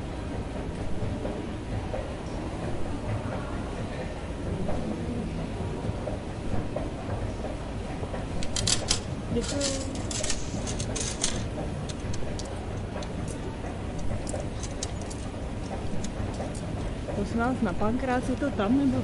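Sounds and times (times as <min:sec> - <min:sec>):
sharp clicks and clatter: 0:08.1 - 0:17.2.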